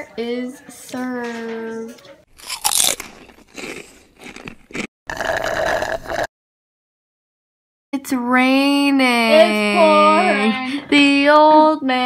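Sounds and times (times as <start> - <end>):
person chewing food: 2.3 - 6.3.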